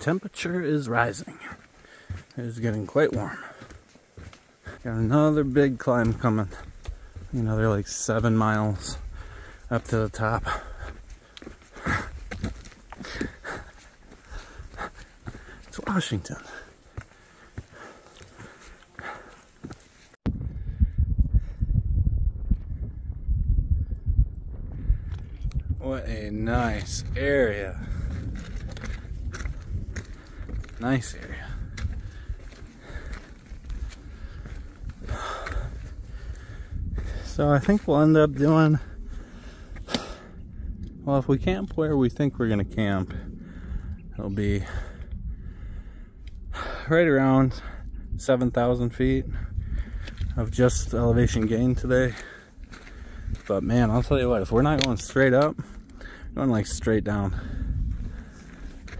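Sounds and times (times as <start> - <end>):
wind buffeting microphone: 0.0 - 58.9
man breathing in: 1.8 - 2.3, 9.1 - 9.7, 39.0 - 40.8, 43.2 - 44.0, 44.7 - 46.9
low rumble: 20.2 - 46.8.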